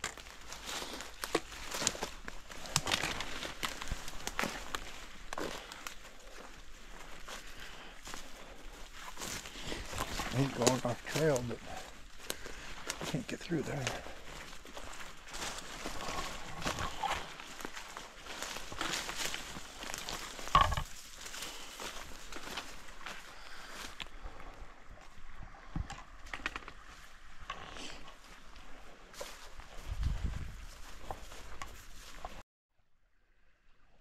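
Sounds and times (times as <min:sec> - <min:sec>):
branches swishing and snapping: 0:00.0 - 0:06.0, 0:13.8 - 0:22.7
footsteps crunching: 0:00.0 - 0:25.2, 0:26.1 - 0:32.4.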